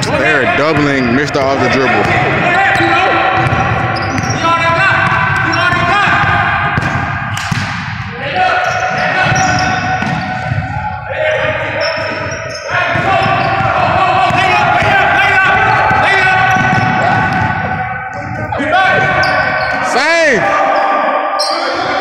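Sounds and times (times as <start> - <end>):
basketball bouncing on hardwood floor: 3.4 - 4.4, 5.0 - 8.0, 12.9 - 15.0, 15.9 - 17.8.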